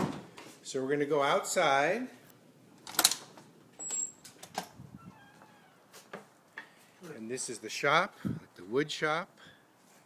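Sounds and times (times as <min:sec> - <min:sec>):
door clicking open: 0:02.8 - 0:05.6
high-pitched squeak: 0:05.0 - 0:05.8.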